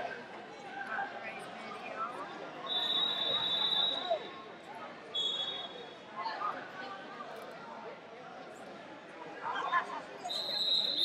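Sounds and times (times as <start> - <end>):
background voices and chatter: 0.0 - 11.0.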